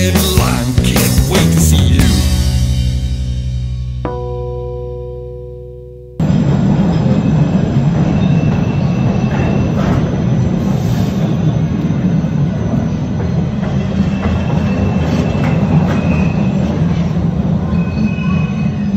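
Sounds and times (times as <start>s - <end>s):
subway train rumbling: 0.0s - 3.4s, 6.2s - 18.9s
high wheel squeals: 6.9s - 18.9s.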